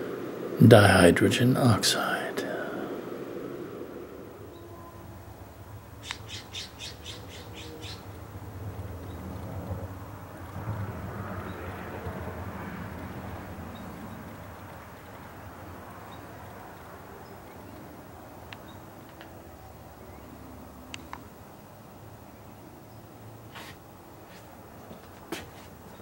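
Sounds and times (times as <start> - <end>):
low steady rumble: 0.0 - 18.6
bird squawking: 6.0 - 8.1.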